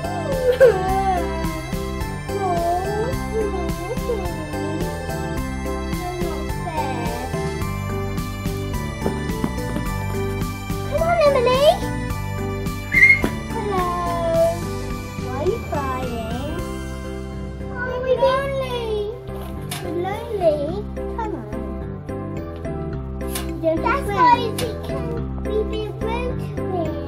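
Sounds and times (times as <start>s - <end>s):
wailing cry: 0.0s - 4.8s
keyboard music with steady beat: 0.0s - 26.8s.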